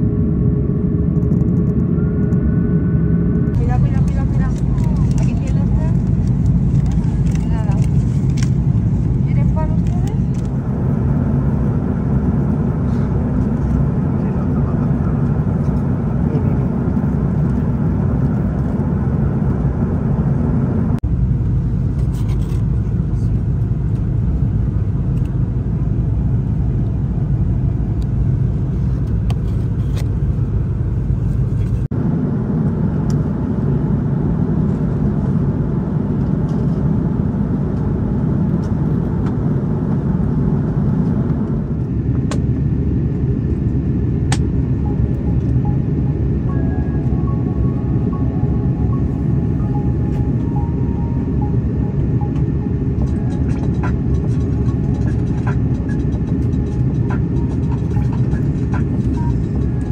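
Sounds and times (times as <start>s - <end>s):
airliner cabin rumble: 0.0s - 59.9s.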